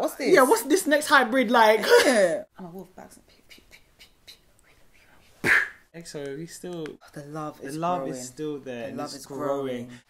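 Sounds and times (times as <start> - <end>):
faint whispering hisses and ticks: 3.0 - 5.4.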